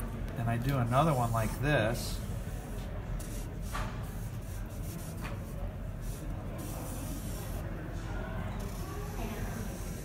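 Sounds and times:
marker hissing strokes on paper: 0.8s - 7.7s, 8.5s - 10.0s.

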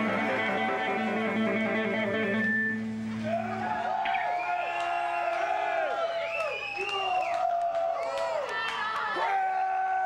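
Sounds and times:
crowd cheering and shouting: 3.1s - 10.0s.

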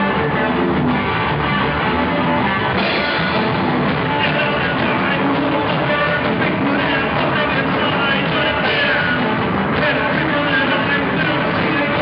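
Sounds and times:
distorted electric guitar: 0.0s - 12.0s
drum kit with cymbals: 2.6s - 12.0s.

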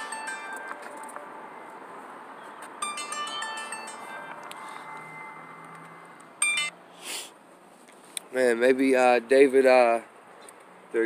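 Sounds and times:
bell-like chime tones: 0.0s - 0.9s, 2.8s - 5.7s, 6.4s - 6.7s.

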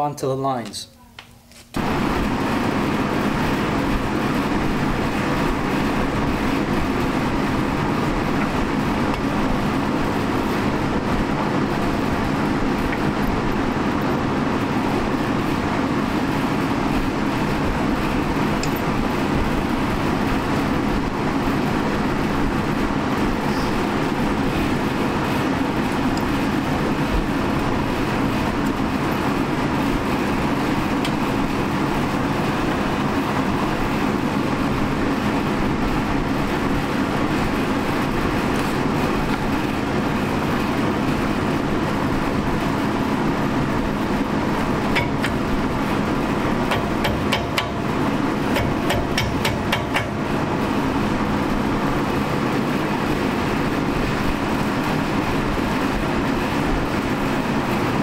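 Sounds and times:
large fan running: 0.0s - 58.0s.

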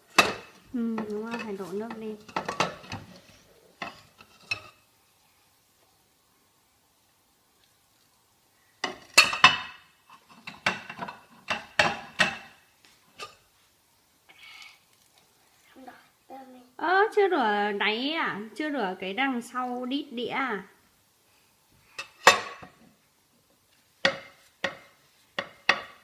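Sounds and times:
dishes clattering in a sink: 2.2s - 3.1s, 8.8s - 12.6s, 22.0s - 22.8s, 24.0s - 26.0s.

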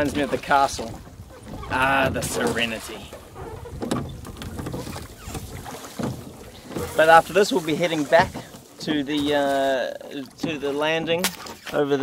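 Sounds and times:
wind on microphone: 0.0s - 6.9s
reed noise: 0.0s - 9.6s
water wash: 0.0s - 11.8s.

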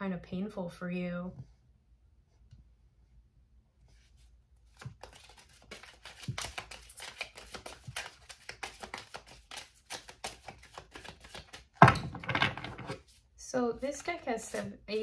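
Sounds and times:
cards being shuffled: 4.0s - 13.2s, 13.8s - 15.0s.

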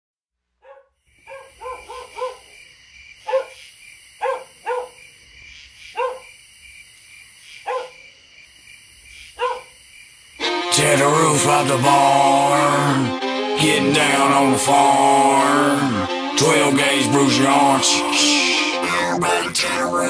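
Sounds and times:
dog barking: 0.6s - 2.6s, 3.2s - 3.6s, 4.2s - 5.0s, 5.9s - 6.3s, 7.6s - 8.1s, 9.4s - 9.8s.

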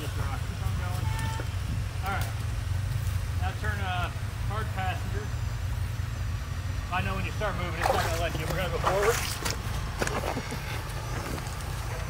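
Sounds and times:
people talking: 0.0s - 2.4s, 3.4s - 5.4s, 6.9s - 9.4s
engine running at low revs: 0.0s - 12.0s.

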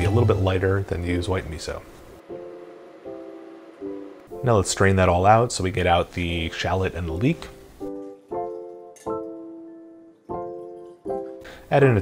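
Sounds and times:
soft piano chords: 0.0s - 12.0s.

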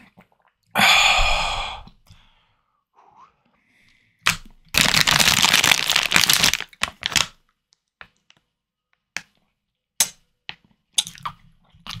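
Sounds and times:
plastic bags crinkling: 4.7s - 7.4s.

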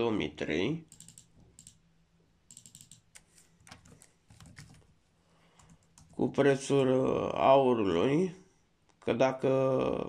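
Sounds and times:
computer keyboard typing: 0.9s - 1.8s, 2.5s - 4.9s, 5.6s - 6.2s.

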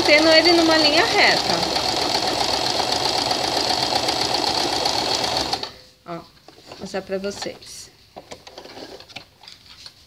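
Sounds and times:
sewing machine running: 0.0s - 5.8s.

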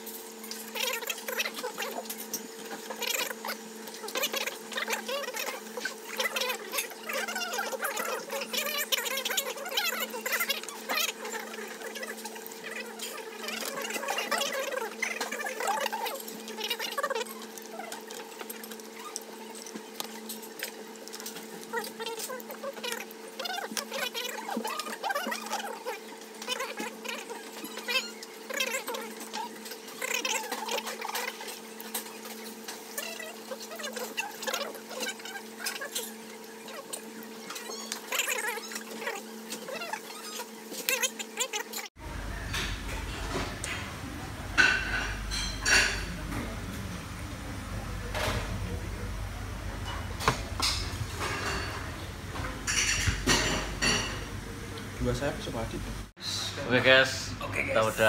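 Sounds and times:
faint voices of diners: 42.0s - 55.0s.

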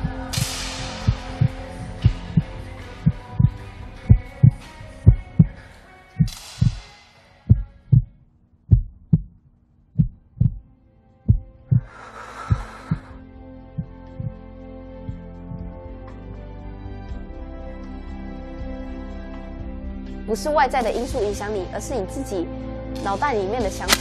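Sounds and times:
heartbeat thumps: 0.0s - 5.6s, 6.2s - 6.8s, 7.5s - 9.4s, 10.0s - 10.7s, 11.3s - 14.4s
soft sustained music: 0.0s - 8.0s, 10.6s - 24.0s.

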